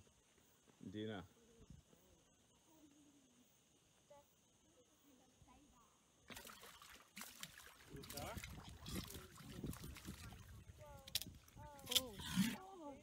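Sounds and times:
water splashing and sloshing: 0:06.2 - 0:12.6.

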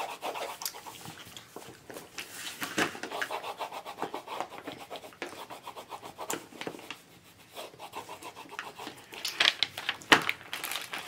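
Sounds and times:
crayons scribbling on paper: 0:00.0 - 0:01.1, 0:03.0 - 0:09.2.

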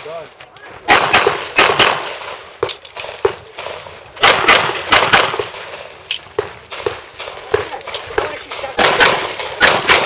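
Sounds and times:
handgun shots: 0:00.9 - 0:10.0.

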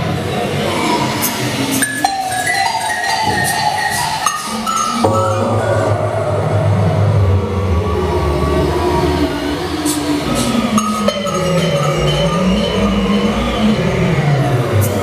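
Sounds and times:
loud low drone: 0:05.0 - 0:15.0.

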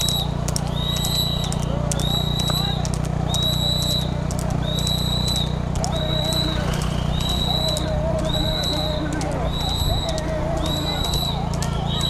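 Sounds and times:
vehicle rumbling: 0:00.0 - 0:12.0.

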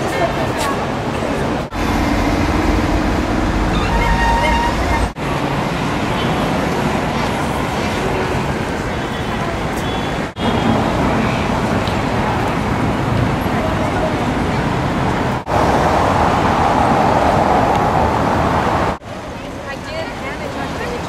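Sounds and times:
busy street traffic noise: 0:00.0 - 0:21.0.

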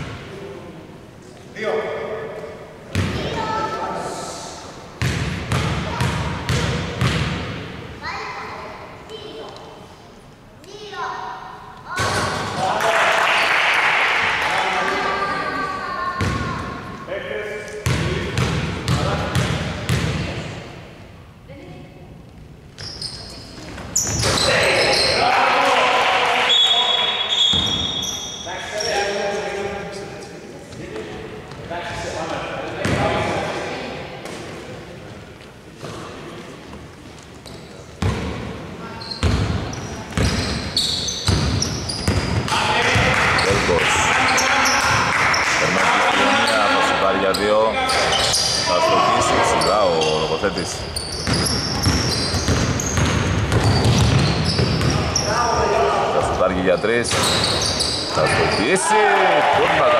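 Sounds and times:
players calling out: 0:39.8 - 0:56.5, 0:57.1 - 0:59.9
basketball bouncing on hardwood: 0:51.2 - 0:55.0.

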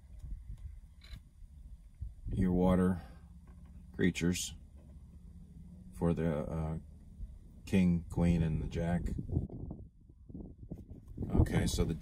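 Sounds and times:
wind noise on microphone: 0:00.0 - 0:02.8, 0:08.1 - 0:12.0.

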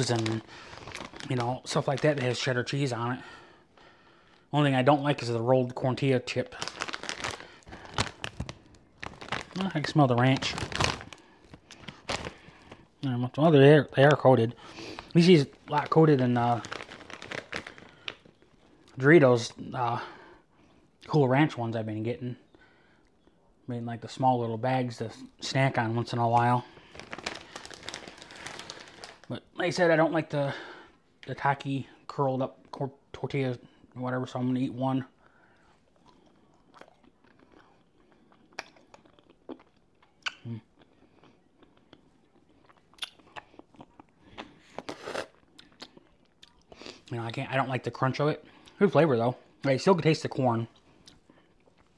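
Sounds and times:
plastic chip bag crinkling: 0:00.0 - 0:03.0, 0:04.3 - 0:13.4, 0:14.1 - 0:19.0, 0:25.6 - 0:30.0
quiet chewing: 0:35.5 - 0:47.1, 0:50.7 - 0:51.9.

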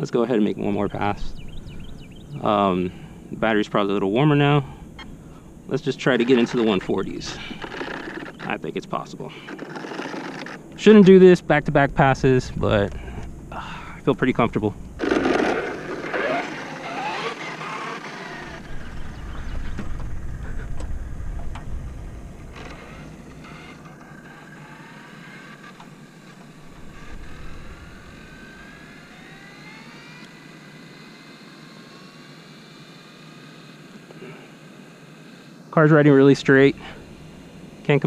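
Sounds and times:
electric motor whining: 0:04.4 - 0:08.6, 0:09.3 - 0:10.8, 0:14.6 - 0:38.0.

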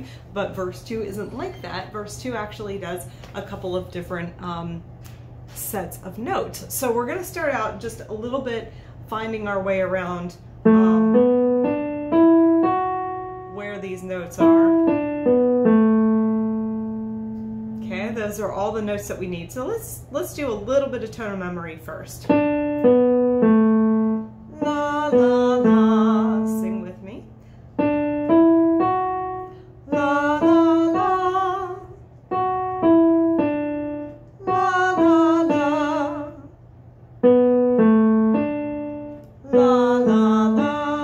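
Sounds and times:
woman singing la: 0:10.7 - 0:11.4, 0:13.6 - 0:15.0, 0:24.4 - 0:27.3, 0:29.8 - 0:32.1, 0:34.4 - 0:36.5, 0:39.4 - 0:41.0
electronic keyboard notes: 0:10.7 - 0:13.8, 0:14.4 - 0:18.2, 0:22.3 - 0:36.4, 0:37.2 - 0:41.0.

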